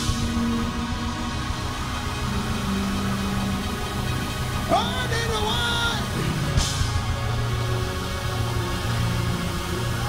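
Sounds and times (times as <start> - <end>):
keyboard and bass chords: 0.0 - 10.0.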